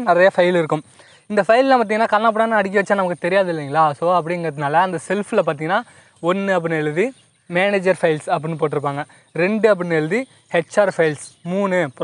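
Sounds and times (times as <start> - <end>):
person lecturing: 0.0 - 12.0.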